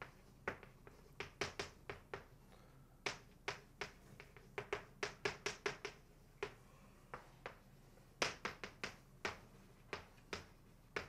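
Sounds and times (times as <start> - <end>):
chalk tapping on blackboard: 0.0 - 2.4, 3.0 - 11.0.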